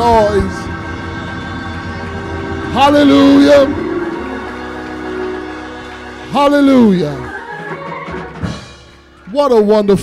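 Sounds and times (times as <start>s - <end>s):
organ sustained chords: 0.0s - 7.2s.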